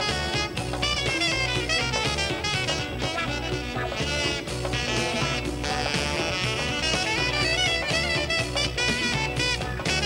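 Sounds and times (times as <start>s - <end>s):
saxophone solo: 0.0s - 10.0s
swing band bass and drums: 0.0s - 10.0s.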